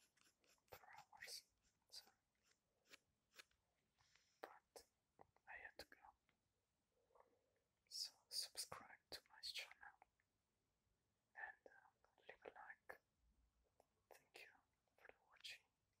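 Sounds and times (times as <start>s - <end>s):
man whispering: 0.6s - 2.2s, 4.4s - 6.2s, 7.9s - 10.1s, 11.4s - 13.0s, 14.1s - 15.7s.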